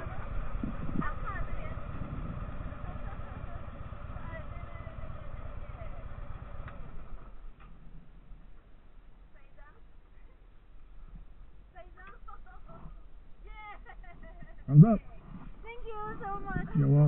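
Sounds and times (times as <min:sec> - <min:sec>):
motorcycle engine idling: 0:00.0 - 0:17.0.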